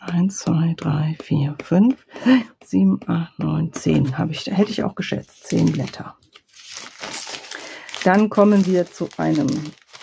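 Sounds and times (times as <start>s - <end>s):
card paper rustling: 4.6s - 10.0s.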